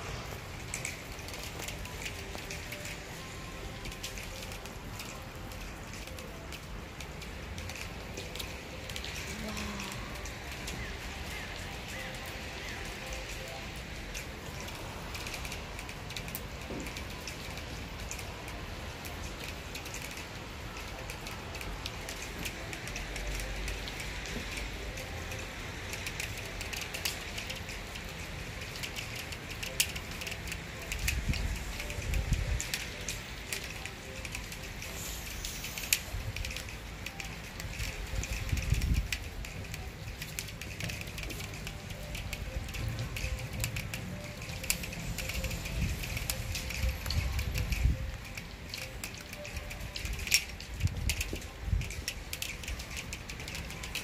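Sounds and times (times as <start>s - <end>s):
wet snow pattering and crackling: 0.0s - 54.0s.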